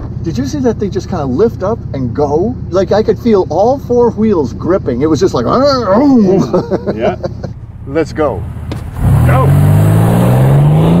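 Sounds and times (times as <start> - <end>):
truck engine accelerating hard: 0.0 - 11.0.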